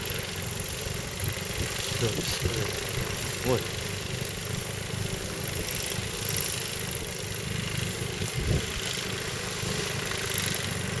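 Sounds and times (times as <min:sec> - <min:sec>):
wind buffeting microphone: 0:08.1 - 0:08.9.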